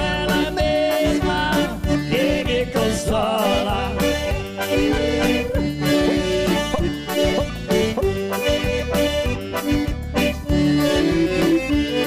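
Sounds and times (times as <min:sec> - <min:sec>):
accordion melody: 0:00.0 - 0:12.0
keyboard accompaniment: 0:00.0 - 0:12.0
regular beat: 0:03.6 - 0:10.8.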